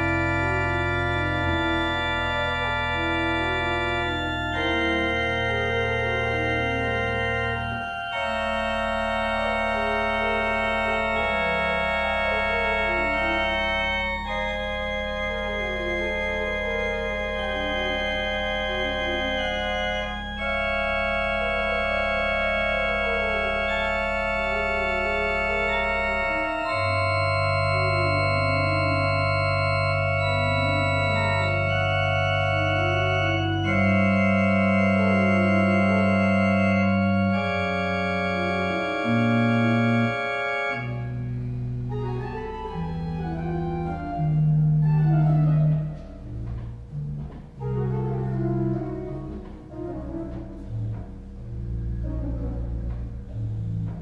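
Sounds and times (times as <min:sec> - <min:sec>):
organ playing slow chords: 0:00.0 - 0:54.0.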